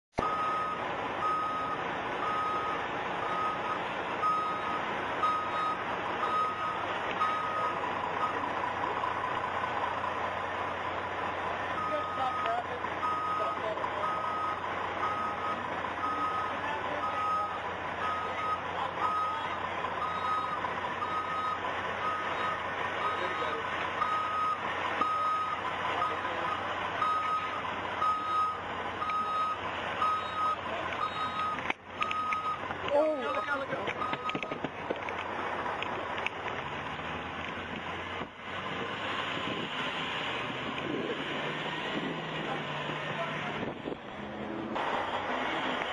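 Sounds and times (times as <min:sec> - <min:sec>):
street noise: 0:00.1 - 0:45.9
reversing alarm beeping: 0:00.2 - 0:08.4, 0:11.8 - 0:34.6
voices: 0:00.2 - 0:36.3, 0:41.9 - 0:45.9.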